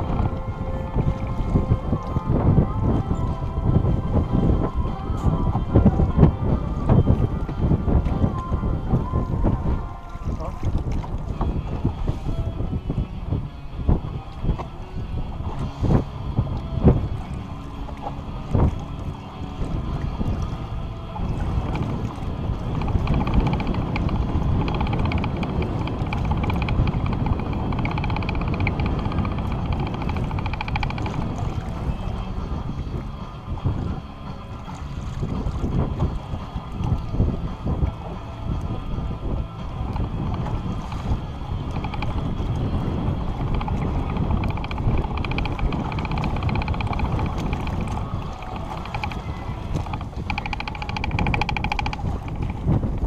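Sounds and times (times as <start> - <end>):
water splashing against hull: 0.0 - 53.0
wind buffeting microphone: 0.0 - 53.0.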